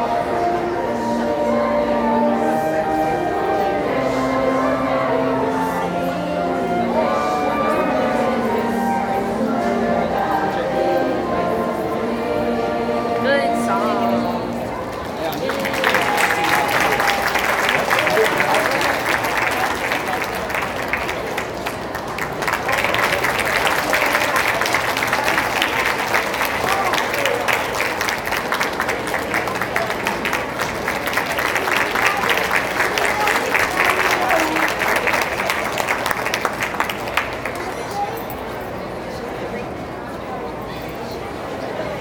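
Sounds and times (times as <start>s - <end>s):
voices in the crowd: 0.0s - 42.0s
audience applauding: 14.8s - 38.1s.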